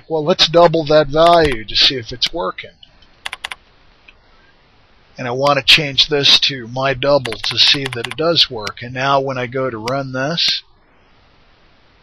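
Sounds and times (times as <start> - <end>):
computer keyboard keystrokes: 3.2 - 3.6, 7.2 - 8.8.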